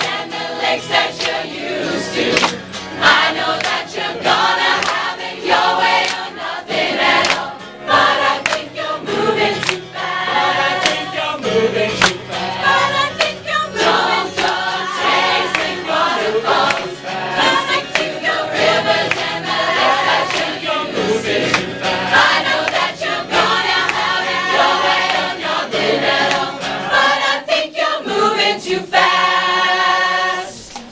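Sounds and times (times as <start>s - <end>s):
choir singing pop song: 0.0s - 30.8s.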